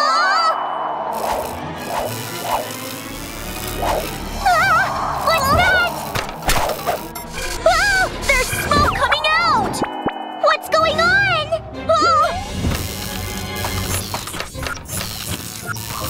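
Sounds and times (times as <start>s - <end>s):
cartoon background music: 0.0s - 16.0s
power line crackling and sizzling: 1.1s - 7.7s, 12.6s - 16.0s.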